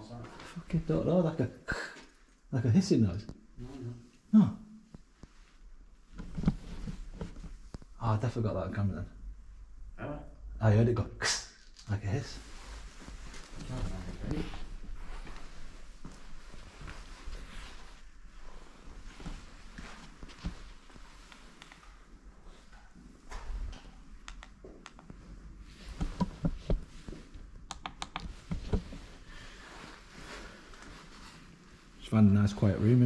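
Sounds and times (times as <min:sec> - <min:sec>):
sharp clicks and knocks: 0:27.7 - 0:28.8.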